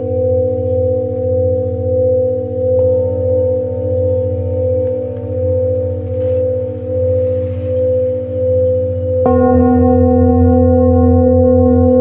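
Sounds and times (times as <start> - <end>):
crickets trilling: 0.0 - 12.0
singing bowls ringing: 0.0 - 12.0.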